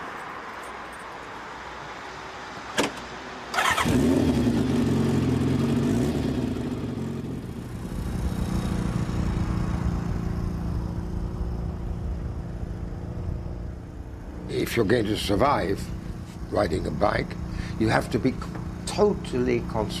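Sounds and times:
motorcycle engine starting and running: 2.8 - 12.9.

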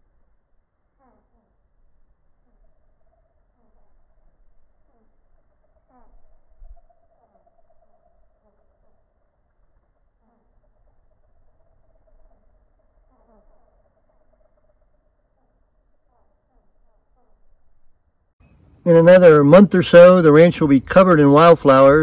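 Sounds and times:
hummingbird wings humming: 0.0 - 22.0
wind rumble on microphone: 6.0 - 8.2.

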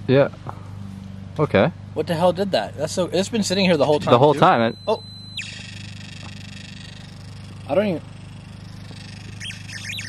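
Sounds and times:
steady low hum: 0.0 - 10.0
high electronic meter tone: 3.2 - 10.0.

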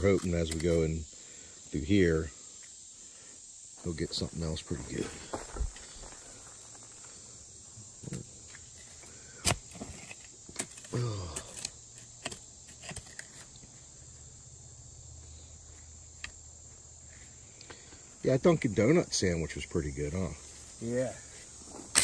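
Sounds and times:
cicadas droning: 0.0 - 22.0
digging tool knocking dirt: 8.0 - 13.6.

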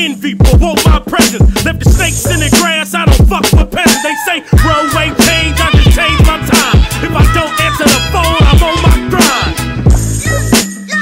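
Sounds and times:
bass line: 0.0 - 10.6
rapping over a beat: 0.0 - 11.0
kick drum hits: 0.4 - 2.0, 3.1 - 3.8.

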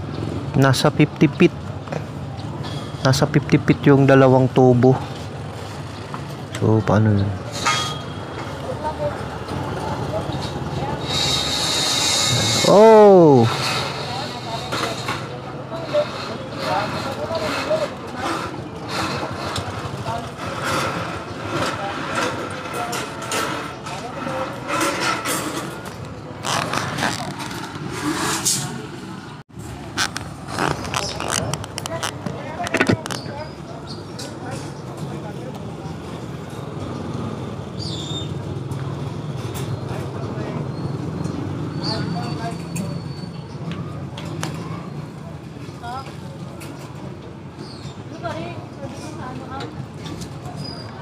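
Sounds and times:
street traffic: 0.0 - 51.0
people's voices: 0.5 - 5.3, 6.0 - 37.4.

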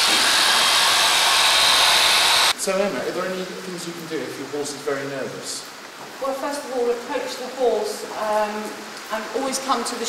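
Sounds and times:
electric clippers buzzing: 0.0 - 2.6.

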